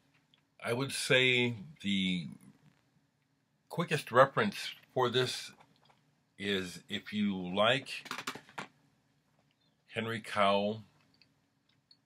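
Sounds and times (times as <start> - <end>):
man speaking: 0.6 - 2.5, 3.7 - 5.6, 6.4 - 8.1, 9.9 - 10.9.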